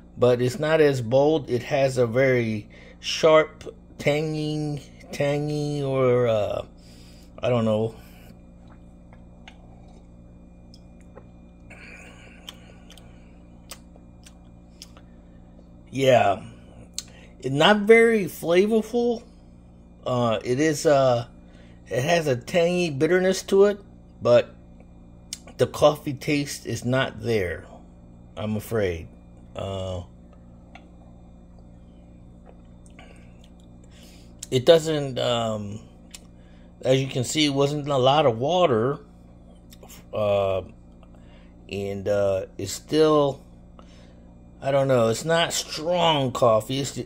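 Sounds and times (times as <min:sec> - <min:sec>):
steady low hum: 0:00.0 - 0:47.0
mouth clicks and lip smacks: 0:12.4 - 0:15.0, 0:36.0 - 0:36.3.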